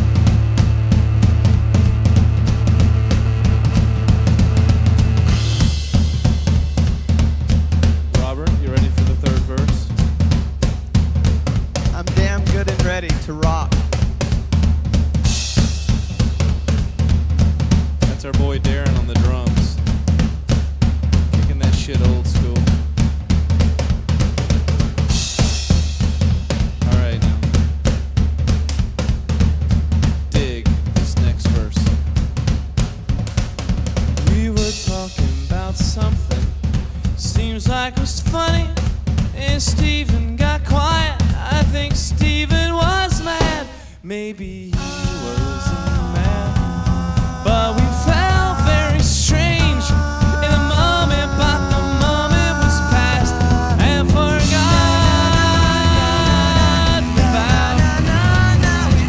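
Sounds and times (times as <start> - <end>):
drum beat: 0.0 - 44.0, 44.7 - 59.0
bass line: 0.0 - 59.0.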